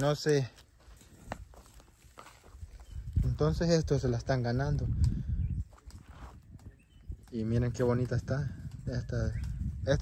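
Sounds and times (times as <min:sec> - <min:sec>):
footsteps on dry dirt: 0:00.0 - 0:08.0.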